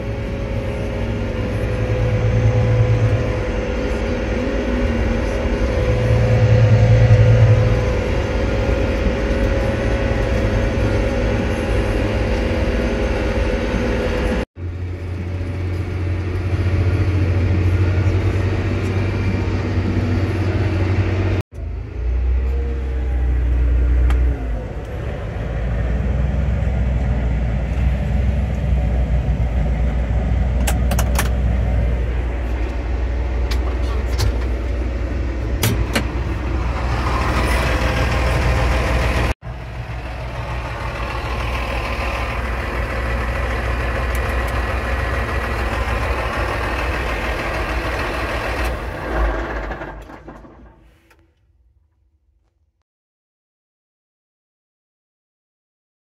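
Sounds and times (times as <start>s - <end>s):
tractor diesel engine droning: 0.0s - 51.4s.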